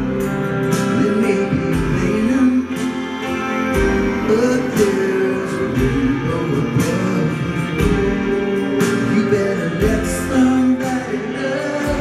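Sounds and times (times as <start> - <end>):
guitars: 0.0 - 12.0
keyboards: 0.0 - 12.0
strings: 0.0 - 12.0.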